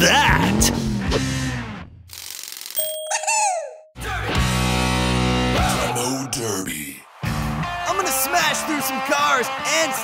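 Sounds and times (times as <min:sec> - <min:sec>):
bright ding sliding down: 0:02.8 - 0:03.9.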